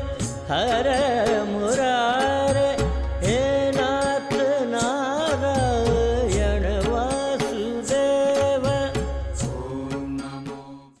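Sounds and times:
percussion strikes: 0:00.0 - 0:10.9.

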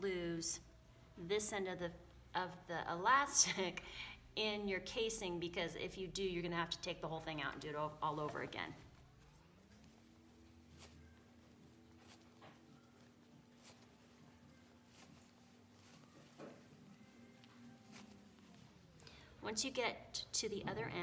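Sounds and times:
fabric rustling: 0:06.1 - 0:21.0.

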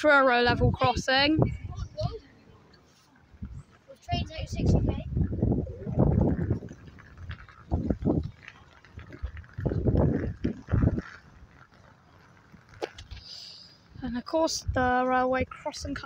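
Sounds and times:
wind gusts on microphone: 0:00.0 - 0:16.0.

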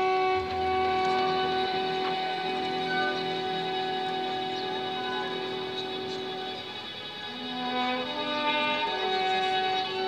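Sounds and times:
orchestra holding a chord: 0:00.0 - 0:10.0.

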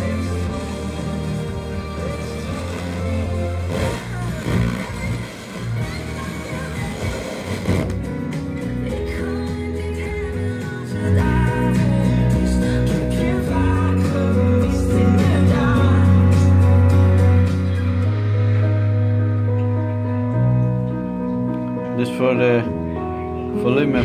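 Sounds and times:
music through loudspeakers: 0:00.0 - 0:24.0.

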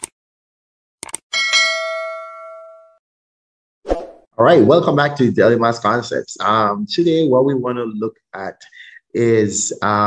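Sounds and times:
notification bell ding: 0:01.3 - 0:03.0.

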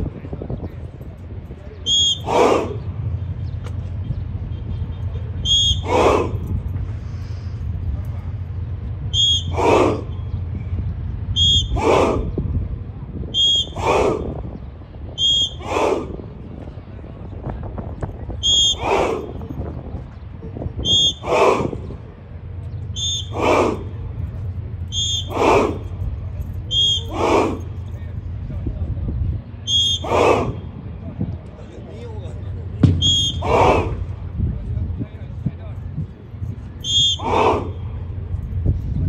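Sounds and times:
low rumble: 0:00.0 - 0:29.7, 0:30.4 - 0:39.0
whistle blast: 0:01.8 - 0:02.6, 0:04.5 - 0:06.2, 0:09.1 - 0:10.4, 0:11.3 - 0:12.0, 0:13.3 - 0:14.0, 0:15.2 - 0:15.7, 0:18.4 - 0:19.3, 0:20.8 - 0:21.3, 0:22.9 - 0:23.7, 0:24.9 - 0:25.7, 0:26.6 - 0:27.4, 0:29.6 - 0:30.7, 0:32.9 - 0:33.9, 0:36.8 - 0:37.9
group shouting in unison: 0:02.0 - 0:03.0, 0:05.6 - 0:06.6, 0:09.3 - 0:10.2, 0:11.5 - 0:12.4, 0:13.5 - 0:14.4, 0:15.4 - 0:16.3, 0:18.4 - 0:19.5, 0:20.9 - 0:22.0, 0:23.1 - 0:24.0, 0:25.1 - 0:26.0, 0:26.7 - 0:27.8, 0:30.0 - 0:30.6, 0:33.3 - 0:34.2, 0:37.0 - 0:37.9.

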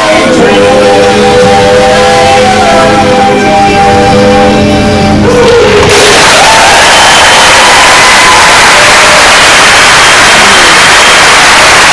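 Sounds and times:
loud steady noise rush: 0:00.0 - 0:11.9.

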